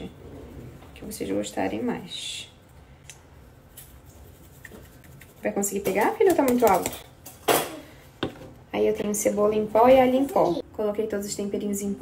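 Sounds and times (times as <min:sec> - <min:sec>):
spice jar shaken and tapped: 0:03.8 - 0:07.0.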